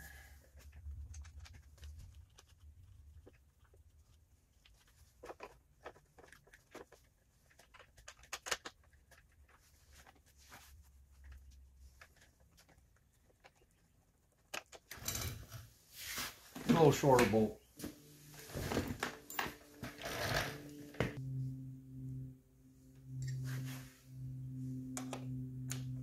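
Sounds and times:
low steady hum: 16.5 - 26.0.

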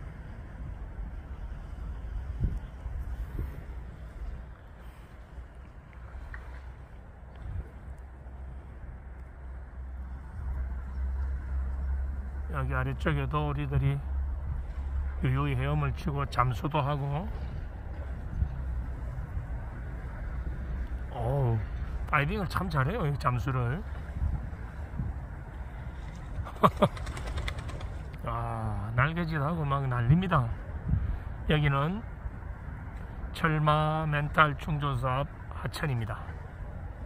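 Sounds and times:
low outdoor rumble: 0.0 - 37.0.

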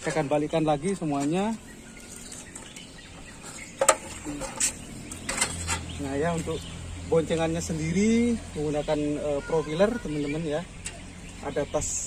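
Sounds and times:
bicycle handling noise: 0.0 - 7.6.

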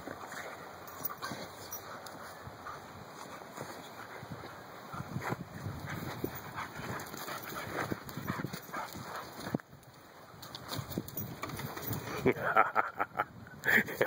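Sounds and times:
dogs scuffling: 0.0 - 9.7.

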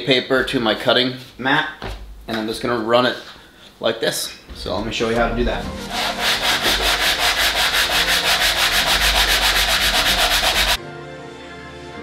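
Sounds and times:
music: 4.5 - 12.0
foam board rubbed on sandpaper: 5.8 - 10.8.

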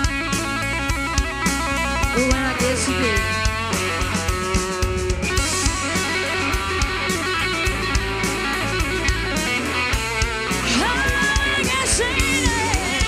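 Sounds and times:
drum kit beat: 0.0 - 13.0
electric guitar notes: 0.0 - 13.0.

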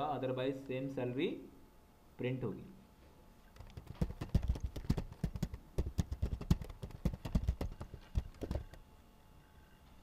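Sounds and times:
keyboard typing clicks: 3.6 - 8.8.

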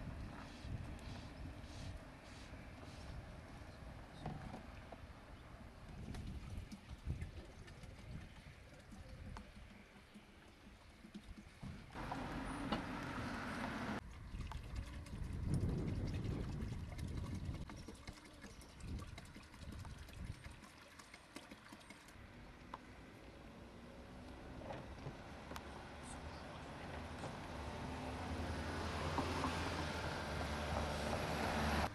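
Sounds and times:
liquid pouring into plastic tank: 14.1 - 22.2.

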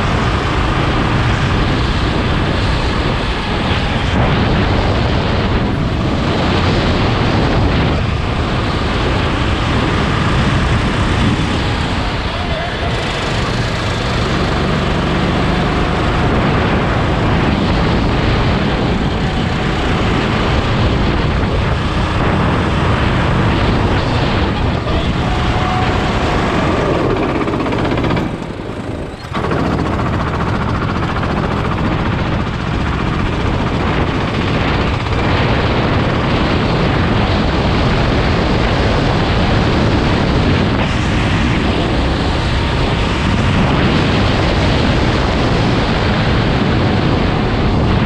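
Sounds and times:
go-kart engine running: 0.0 - 48.0
wind on microphone: 0.0 - 48.0.

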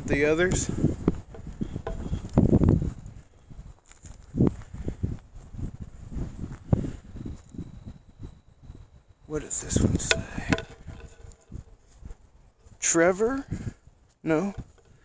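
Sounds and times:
footsteps through dry grass and leaves: 1.7 - 7.6, 10.2 - 12.8.

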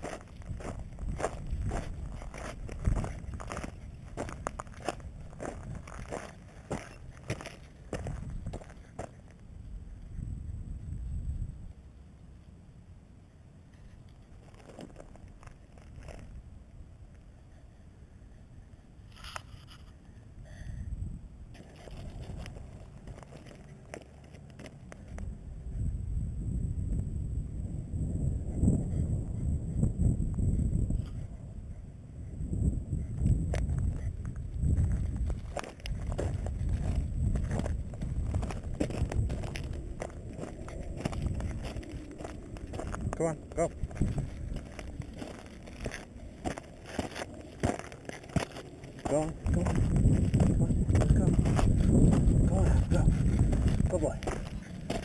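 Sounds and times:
footsteps crunching on gravel: 0.0 - 9.4, 14.3 - 16.4, 21.6 - 25.2, 33.5 - 55.0
wind buffeting microphone: 0.0 - 11.9, 13.7 - 55.0.

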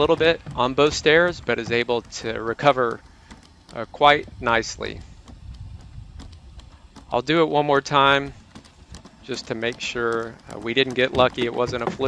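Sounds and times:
robot feet tapping on concrete: 0.0 - 12.0.

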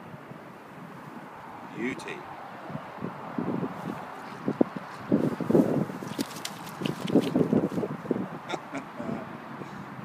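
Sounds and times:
rustling in grass and mud: 3.7 - 8.1.

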